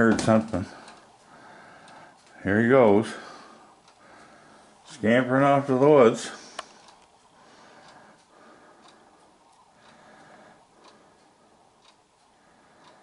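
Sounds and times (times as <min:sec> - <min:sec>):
faint regular ticking: 0:00.0 - 0:13.0.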